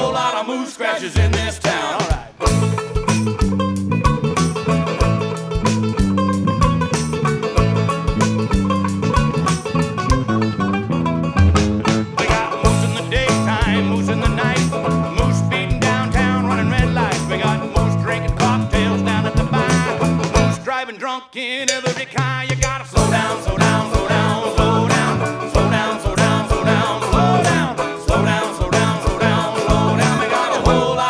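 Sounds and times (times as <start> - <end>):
bass line: 1.2 - 1.7, 2.4 - 20.6, 22.2 - 31.0
drum kit beat: 1.2 - 20.6, 21.7 - 31.0
banjo picking: 1.2 - 20.7, 21.6 - 31.0.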